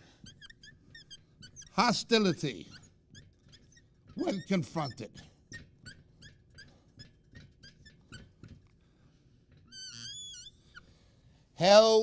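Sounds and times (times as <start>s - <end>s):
marker squeaking on whiteboard: 0.0s - 8.8s, 9.5s - 11.1s.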